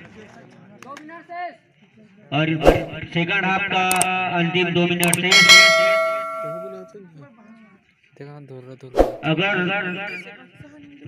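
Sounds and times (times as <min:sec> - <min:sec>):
bright metallic ring: 0:05.0 - 0:07.0.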